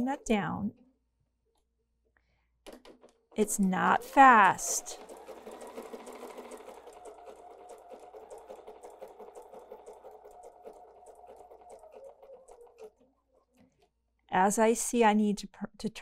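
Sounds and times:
sewing machine running: 2.8 - 13.6.

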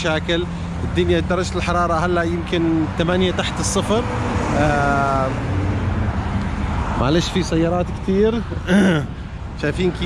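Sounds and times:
traffic engine rumble and tyre noise: 0.0 - 10.0.

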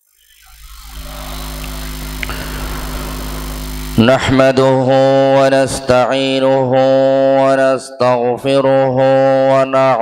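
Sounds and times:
electrical hum: 0.0 - 6.8
man chanting through microphone: 0.9 - 10.0.

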